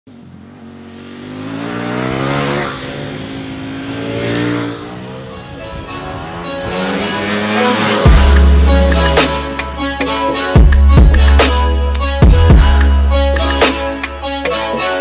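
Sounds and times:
motorcycle engine revving past: 0:00.2 - 0:09.5.

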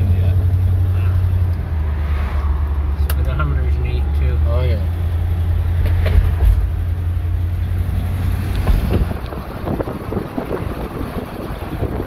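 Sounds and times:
engine and tyre rumble: 0:00.0 - 0:12.0
tyres rumbling on steel bridge: 0:00.0 - 0:12.0
wind on microphone: 0:08.6 - 0:12.0.

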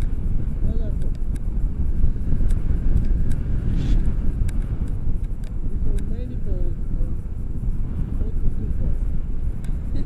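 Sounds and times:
faint ticks: 0:00.0 - 0:03.5, 0:04.3 - 0:06.3, 0:07.2 - 0:10.0
wind rumbling on microphone: 0:00.0 - 0:10.0.

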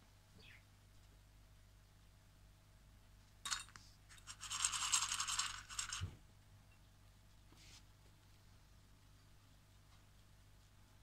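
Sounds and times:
rapid scratching: 0:04.2 - 0:06.1.

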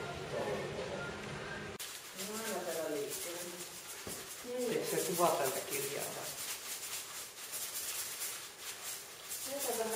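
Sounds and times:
paper rustling: 0:01.8 - 0:09.9
small objects rattling: 0:01.8 - 0:09.9.

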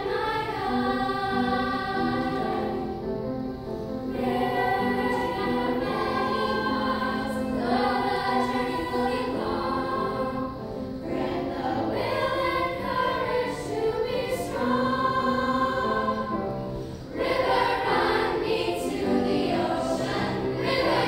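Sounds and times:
girls' choir singing in harmony: 0:00.0 - 0:21.0.

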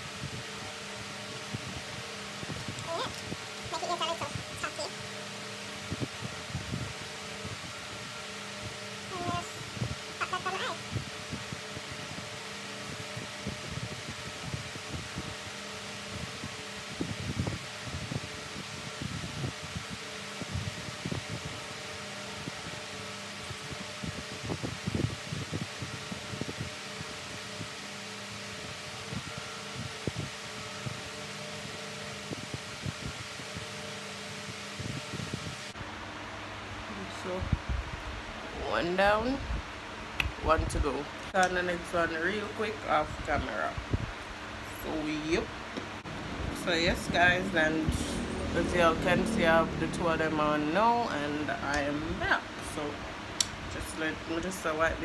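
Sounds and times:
electric fan humming: 0:00.0 - 0:55.0.

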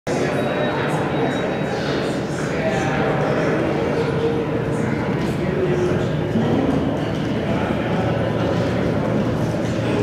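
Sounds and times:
murmur of voices in a hall: 0:00.1 - 0:10.0.

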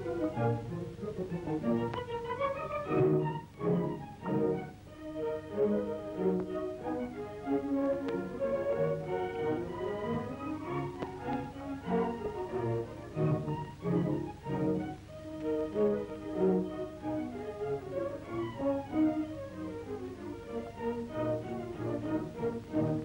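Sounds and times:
instrumental music of held notes: 0:00.0 - 0:23.0.

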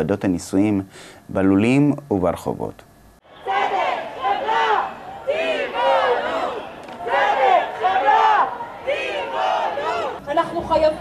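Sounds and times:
crowd chanting in unison: 0:03.2 - 0:10.2.

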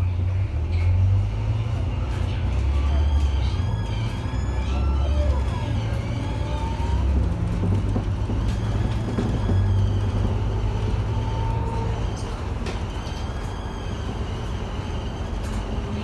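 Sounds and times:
bus engine drone: 0:00.0 - 0:16.0
road rumble: 0:00.0 - 0:16.0.

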